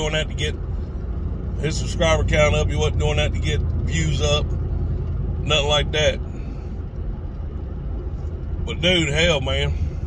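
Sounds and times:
car engine rumble from inside: 0:00.0 - 0:10.0
road noise: 0:00.0 - 0:10.0.

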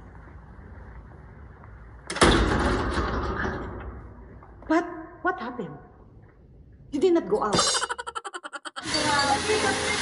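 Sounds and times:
heavy door opening: 0:02.1 - 0:03.9.

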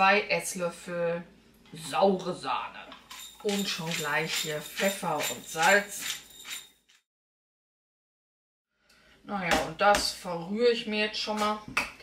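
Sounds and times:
pepper mill grinding: 0:02.9 - 0:06.8.

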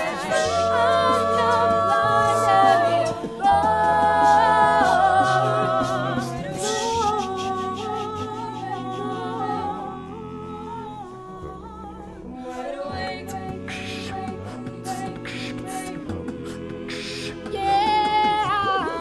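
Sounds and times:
a cappella group singing: 0:00.0 - 0:19.0.

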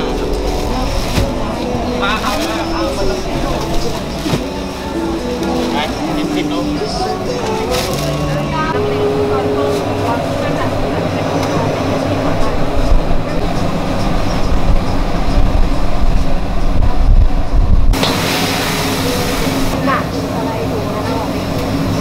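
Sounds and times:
loud low rumbling noise: 0:00.0 - 0:22.0.

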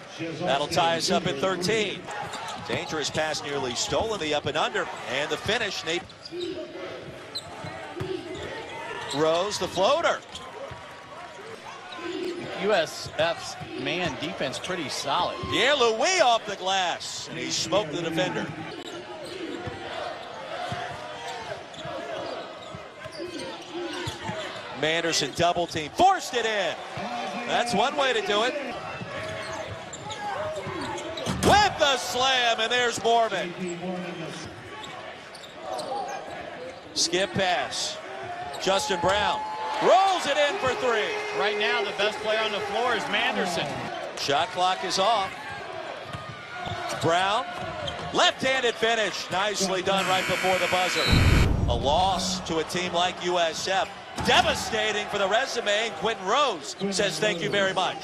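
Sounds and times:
crowded arena background noise: 0:00.0 - 0:58.0
sneaker squeak: 0:02.2 - 0:03.0, 0:06.0 - 0:09.6, 0:18.6 - 0:24.7, 0:29.0 - 0:31.5, 0:34.8 - 0:36.8
low thuds: 0:51.1 - 0:52.5.

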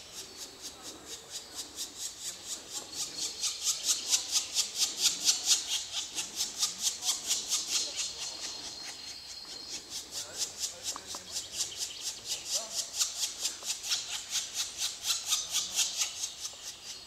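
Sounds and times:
woodpecker nestlings begging: 0:00.0 - 0:17.0.

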